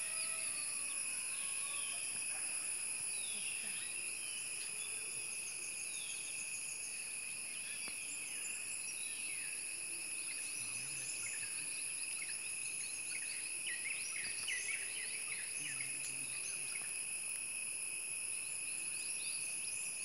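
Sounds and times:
insects droning: 0.0s - 20.0s.

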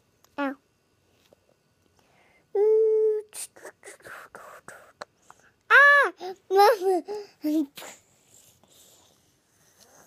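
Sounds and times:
toddler high-pitched vocal sound: 5.7s - 8.0s.

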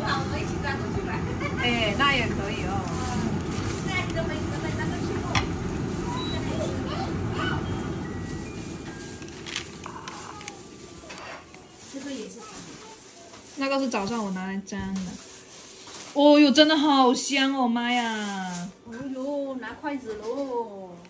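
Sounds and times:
quiet talking: 0.0s - 8.1s, 9.6s - 15.1s
kitchen fan whirring: 0.0s - 21.0s.

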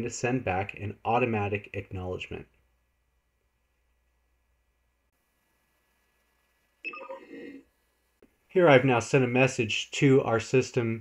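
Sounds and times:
electronic alert chime: 6.9s - 7.6s.

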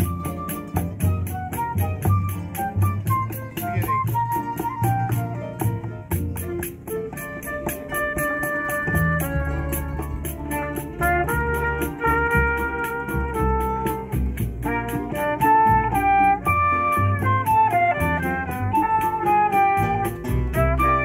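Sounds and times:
acoustic guitars: 0.0s - 21.0s
flute: 0.0s - 21.0s
mandolin: 0.0s - 21.0s
trumpet: 0.0s - 21.0s.

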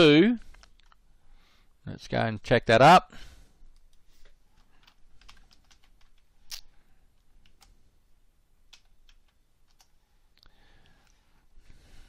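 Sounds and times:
typing on computer keyboard: 4.6s - 6.3s, 8.7s - 9.9s.

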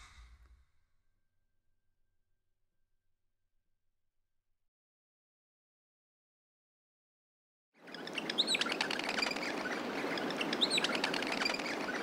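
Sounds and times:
birds chirping and whistling: 7.8s - 12.0s.

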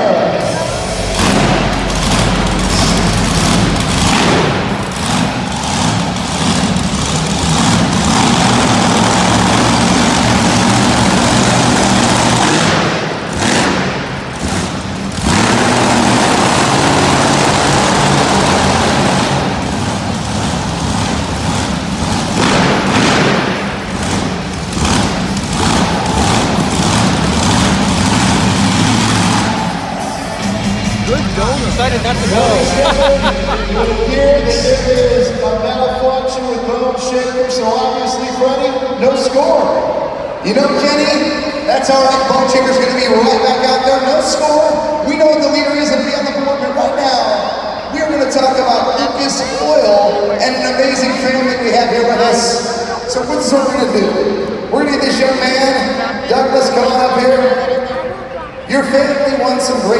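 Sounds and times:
truck engine revving loudly: 0.1s - 58.1s
arena music playing: 29.4s - 35.6s.

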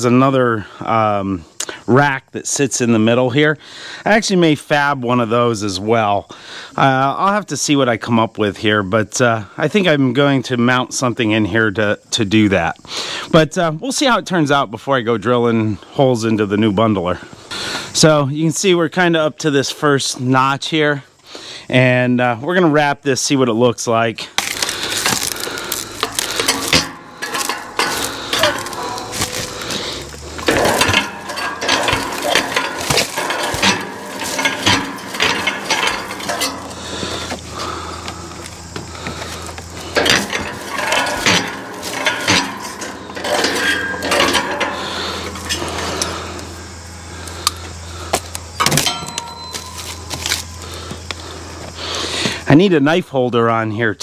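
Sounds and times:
steady low hum: 24.3s - 53.1s.

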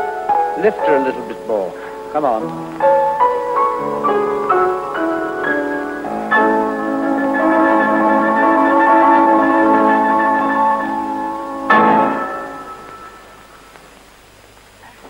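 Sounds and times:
orchestral ballet music chords: 0.0s - 13.7s.

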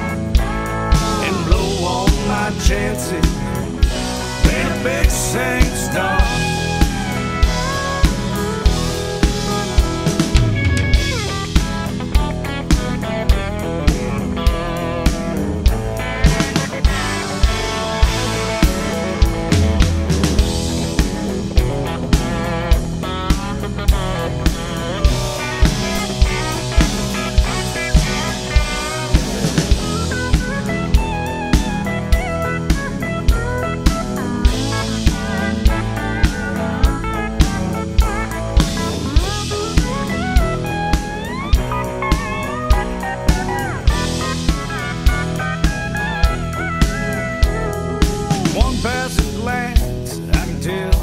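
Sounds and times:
drum kit steady beat: 0.0s - 51.0s
guitar lead with bent notes: 0.0s - 51.0s
recorded country song: 0.0s - 51.0s.

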